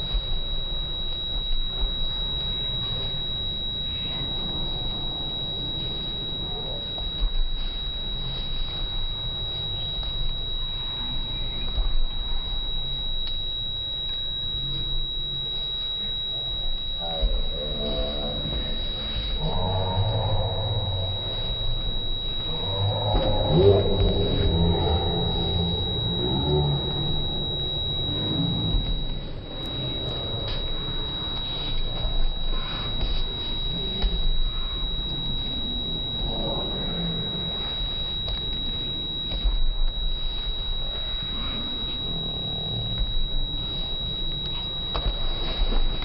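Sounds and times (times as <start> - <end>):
thin high whine: 0.0 - 46.0.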